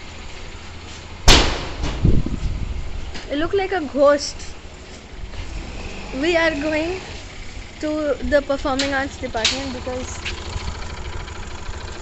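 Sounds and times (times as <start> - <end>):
steady outdoor hiss: 0.0 - 12.0.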